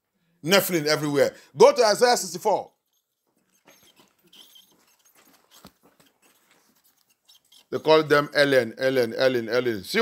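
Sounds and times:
pages rustling: 0:02.9 - 0:08.0.

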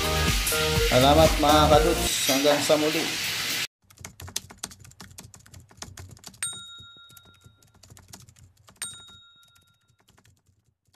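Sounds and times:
rapid clicks like keyboard typing: 0:03.8 - 0:10.9
bright bell dings: 0:06.4 - 0:07.5, 0:08.8 - 0:09.9.

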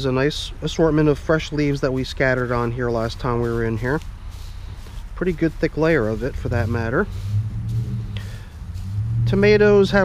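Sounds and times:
steady low hum: 0:00.6 - 0:10.0
dry leaves rustling: 0:00.7 - 0:10.0.

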